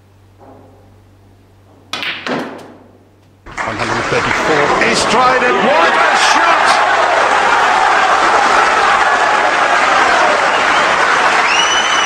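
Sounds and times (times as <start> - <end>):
steady low hum: 0.0 - 2.0.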